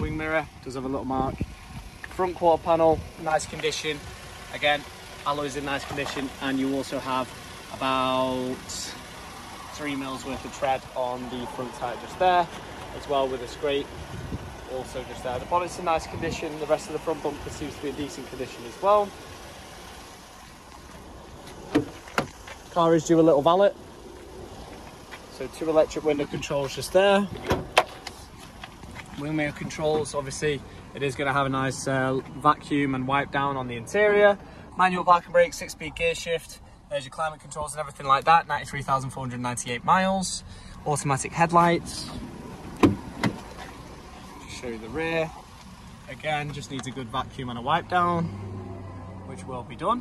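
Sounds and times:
outdoor background hiss: 0.0 - 50.0
car door handle click: 42.8 - 43.5.

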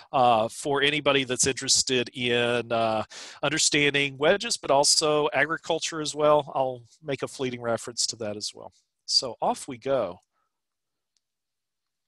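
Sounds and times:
person speaking: 0.0 - 10.2.

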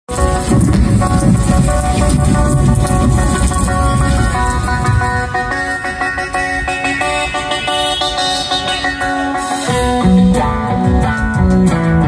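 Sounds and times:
live rock band: 0.1 - 12.0
ringing electric guitar notes: 0.1 - 12.0.

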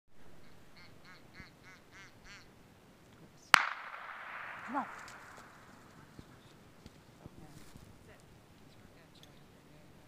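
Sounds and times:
duck call quacks: 0.4 - 2.5
loud gunshot: 3.6 - 6.1.

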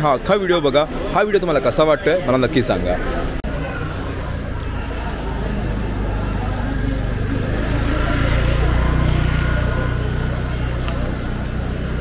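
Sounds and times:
vehicle engine running: 3.4 - 12.0.

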